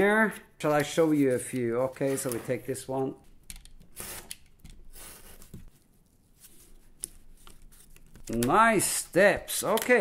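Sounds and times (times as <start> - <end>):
cardboard strips tapping and rustling: 6.6 - 10.0.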